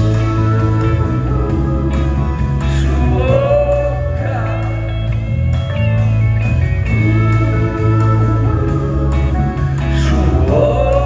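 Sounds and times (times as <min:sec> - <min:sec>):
steady bass: 0:00.0 - 0:11.0.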